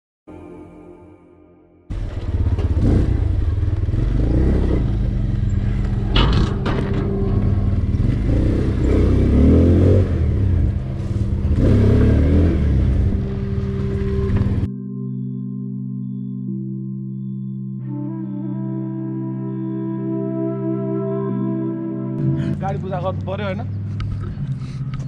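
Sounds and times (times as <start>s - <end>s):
small motorcycle engine revving: 1.9s - 6.3s, 7.7s - 14.7s.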